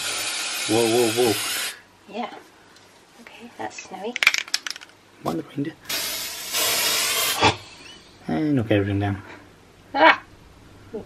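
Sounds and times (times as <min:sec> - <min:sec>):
aerosol spray hissing: 0:05.9 - 0:07.7.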